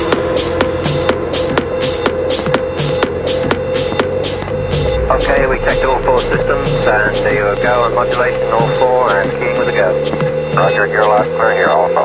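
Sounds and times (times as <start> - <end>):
techno music: 4.2 - 9.9
spoken voice sample: 4.9 - 9.6.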